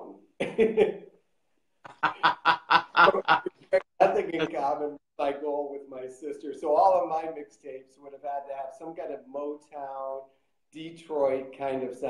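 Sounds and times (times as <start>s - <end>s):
man laughing heartily: 0.4s - 1.0s, 1.9s - 4.6s.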